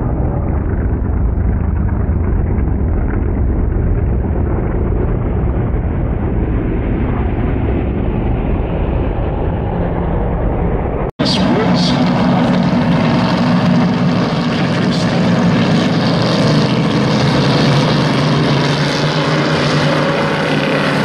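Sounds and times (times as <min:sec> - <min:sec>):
race car engines droning: 0:00.0 - 0:21.0.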